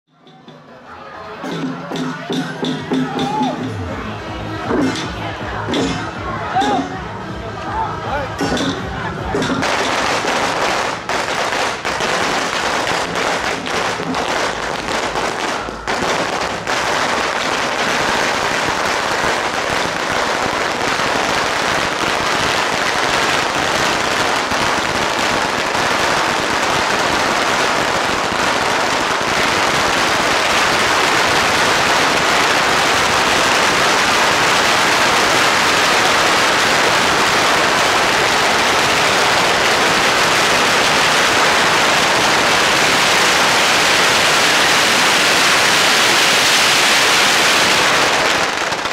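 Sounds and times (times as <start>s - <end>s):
firecrackers crackling: 1.4s - 48.9s.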